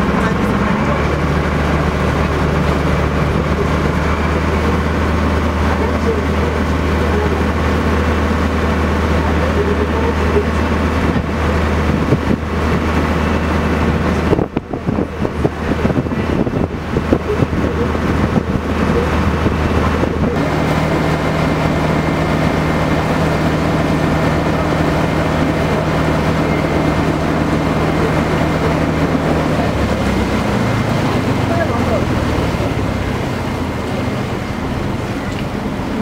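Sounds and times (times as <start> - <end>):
boat engine running: 0.0 - 36.0.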